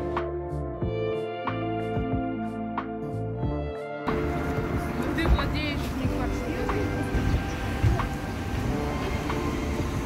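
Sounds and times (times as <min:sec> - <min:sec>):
traffic rumble: 0:04.1 - 0:10.0.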